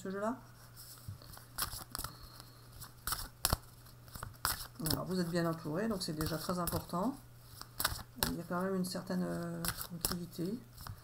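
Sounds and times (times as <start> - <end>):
cards being shuffled: 0.7 - 11.0.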